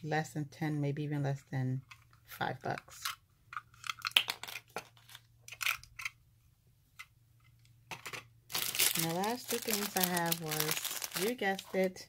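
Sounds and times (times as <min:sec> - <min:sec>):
plastic bags crinkling: 0:08.5 - 0:12.0.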